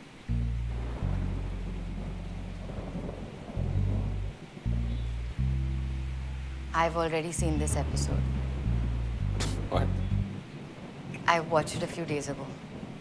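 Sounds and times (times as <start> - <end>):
dramatic low bass score: 0.0 - 10.5
steady hiss: 0.0 - 13.0.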